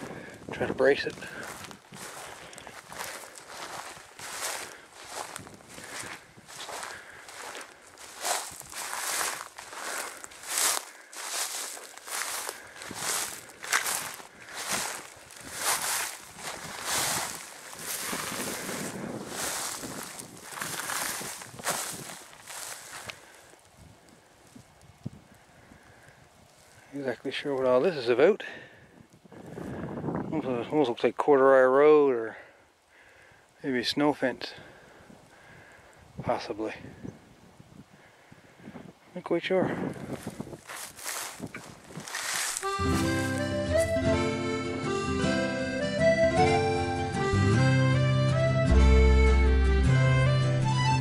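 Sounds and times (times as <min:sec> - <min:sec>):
footsteps through dry grass: 0:00.0 - 0:30.1, 0:39.6 - 0:45.0.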